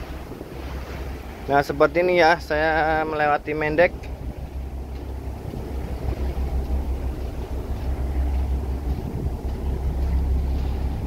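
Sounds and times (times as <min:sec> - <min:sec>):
ship engine rumble: 0:00.0 - 0:11.0
wind buffeting microphone: 0:00.0 - 0:11.0.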